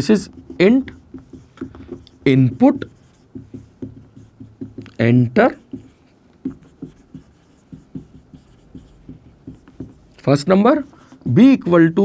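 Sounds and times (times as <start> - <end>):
marker pen writing on whiteboard: 0.0 - 12.0.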